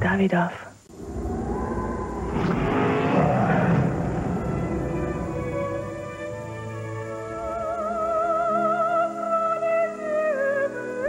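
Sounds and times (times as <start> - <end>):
car engine rumble: 0.9 - 8.3.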